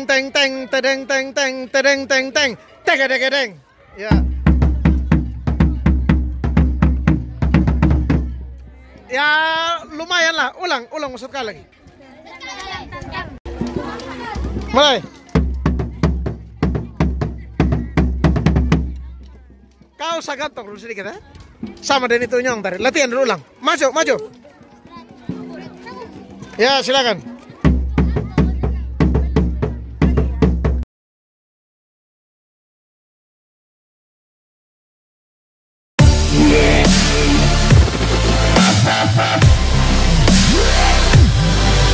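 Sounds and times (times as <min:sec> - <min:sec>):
marching bass drum booming: 0:04.1 - 0:08.5, 0:15.4 - 0:19.1, 0:27.7 - 0:30.8, 0:36.0 - 0:41.9.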